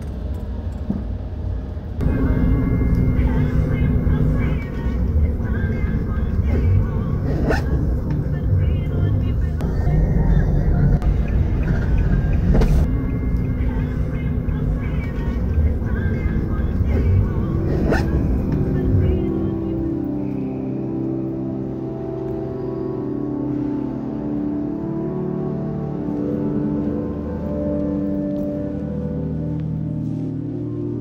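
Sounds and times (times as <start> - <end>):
airliner cabin rumble: 0.0 - 20.2
soft sustained ambient tones: 0.0 - 31.0.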